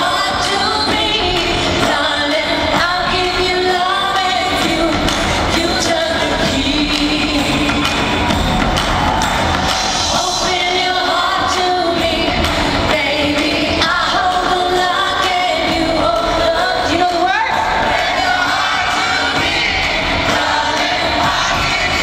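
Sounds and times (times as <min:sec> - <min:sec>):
woman singing: 0:00.0 - 0:08.4, 0:10.0 - 0:22.0
live band with drums: 0:00.0 - 0:22.0.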